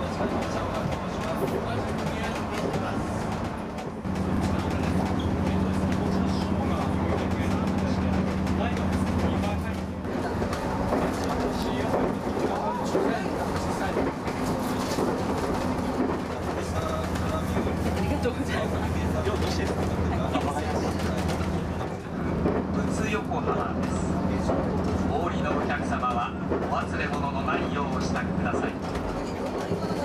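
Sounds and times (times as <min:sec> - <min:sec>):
train running drone: 0:00.0 - 0:30.0
voices talking: 0:00.0 - 0:30.0.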